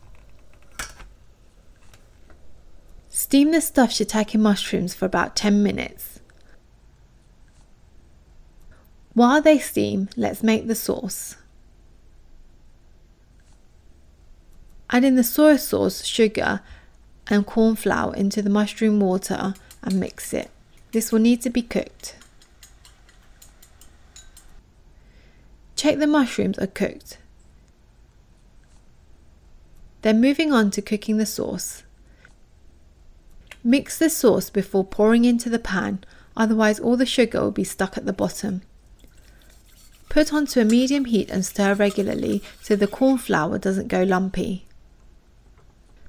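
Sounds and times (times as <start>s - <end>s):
metal chopsticks clinking in bowl: 22.2s - 24.6s.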